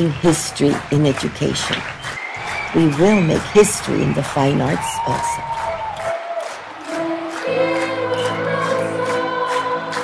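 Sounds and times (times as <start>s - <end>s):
children's choir singing: 6.6s - 10.0s.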